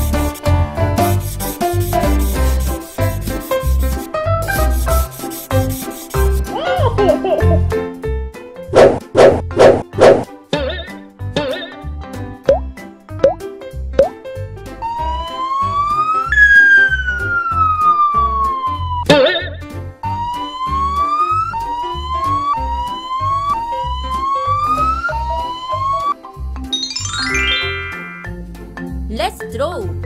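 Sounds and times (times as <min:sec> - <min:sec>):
children's background music: 0:01.0 - 0:08.1, 0:09.9 - 0:30.0
police siren: 0:14.8 - 0:19.1, 0:20.0 - 0:26.2
short upward chirps: 0:26.7 - 0:28.4.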